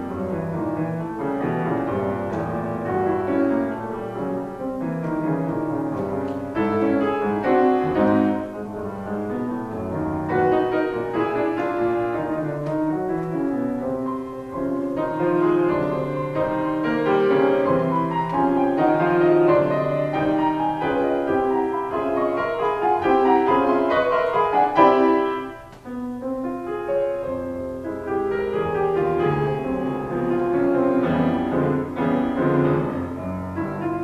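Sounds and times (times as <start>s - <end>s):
grand piano playing tango piece: 0.0s - 34.0s.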